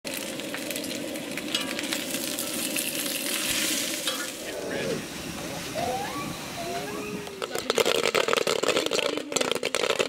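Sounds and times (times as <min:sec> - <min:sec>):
bacon sizzling and popping: 0:00.0 - 0:04.6, 0:07.2 - 0:10.0.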